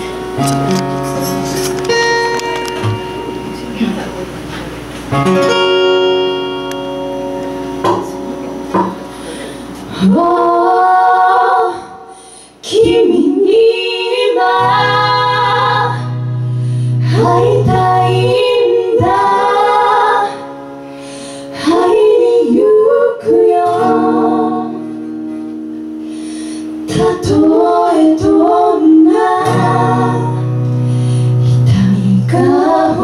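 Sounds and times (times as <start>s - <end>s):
acoustic guitar accompaniment: 0.0s - 33.0s
woman singing: 10.0s - 16.3s, 17.0s - 20.5s, 21.5s - 25.0s, 26.9s - 30.6s, 31.6s - 33.0s.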